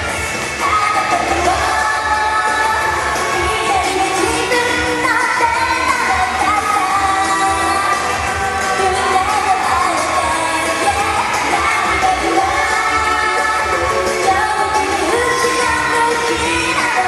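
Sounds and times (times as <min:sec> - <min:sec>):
pop backing track with steady beat: 0:00.0 - 0:17.0
woman singing: 0:00.5 - 0:17.0.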